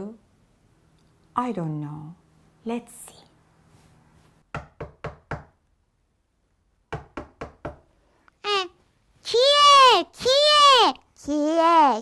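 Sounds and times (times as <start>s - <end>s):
knocking on a door: 4.5s - 5.6s, 6.9s - 7.9s.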